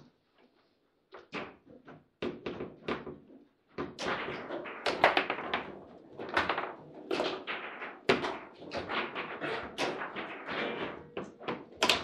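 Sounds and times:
table football knocks and clacks: 1.1s - 12.0s.

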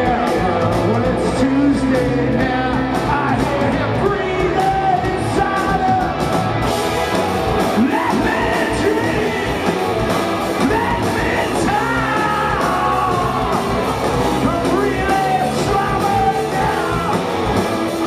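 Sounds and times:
rock band playing live: 0.0s - 18.0s.

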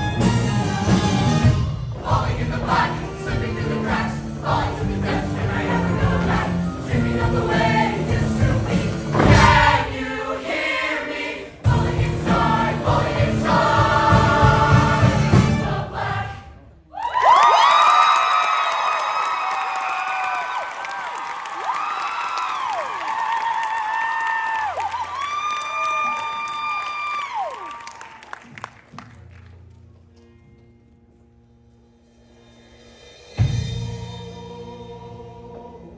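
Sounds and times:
loud backing music: 0.0s - 16.6s
choir singing: 1.9s - 16.7s, 34.0s - 35.9s.

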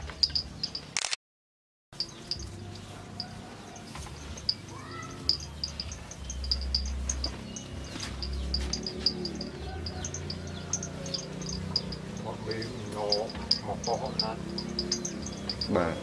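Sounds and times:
crickets chirping: 2.0s - 16.0s.

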